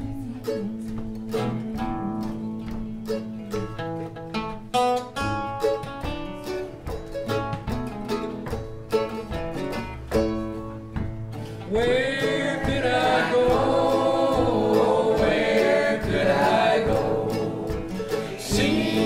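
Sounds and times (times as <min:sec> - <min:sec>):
mandolin picking a tune: 0:00.0 - 0:19.0
strummed acoustic guitars: 0:00.0 - 0:19.0.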